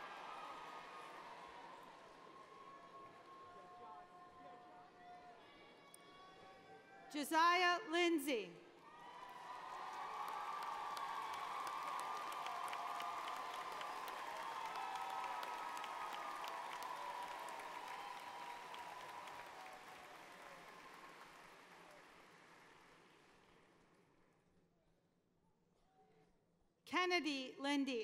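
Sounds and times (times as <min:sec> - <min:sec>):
audience applauding: 0:00.0 - 0:04.0, 0:08.8 - 0:24.0
cheering voices: 0:00.0 - 0:07.0, 0:08.8 - 0:22.0.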